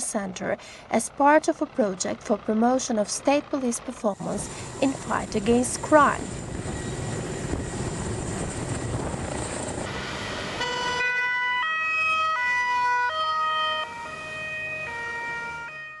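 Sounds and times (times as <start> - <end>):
noisy street background: 0.0 - 16.0
two-tone police siren: 9.8 - 16.0.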